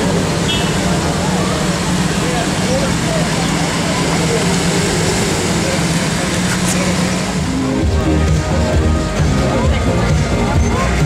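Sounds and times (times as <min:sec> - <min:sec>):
car engine idling: 0:00.0 - 0:11.0
street noise: 0:00.0 - 0:11.0.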